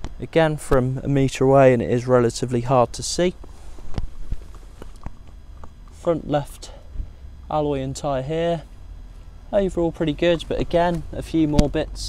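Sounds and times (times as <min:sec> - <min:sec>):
faint low rumble: 0:00.0 - 0:12.0
light footsteps on ground: 0:03.2 - 0:06.1, 0:08.5 - 0:12.0.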